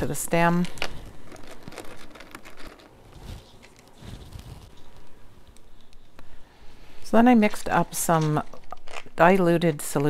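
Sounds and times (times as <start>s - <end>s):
small clicks and crinkles: 0.6s - 6.3s, 7.5s - 9.2s.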